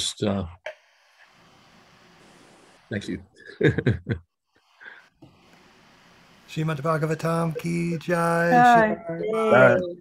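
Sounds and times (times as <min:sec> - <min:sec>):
man speaking: 0:00.0 - 0:00.6, 0:06.5 - 0:10.0.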